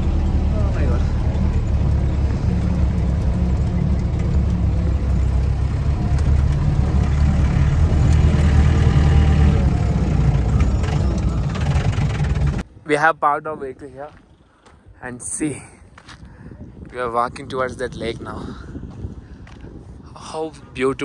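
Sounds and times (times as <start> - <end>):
jeep engine and road rumble: 0.0 - 21.0.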